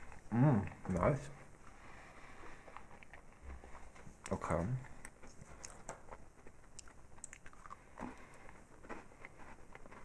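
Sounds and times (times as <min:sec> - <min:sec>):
chewing cookie: 0:00.0 - 0:10.0.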